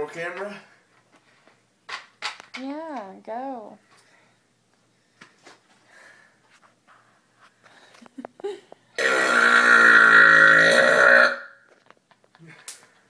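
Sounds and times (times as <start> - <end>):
person burping loudly: 9.0 - 11.7.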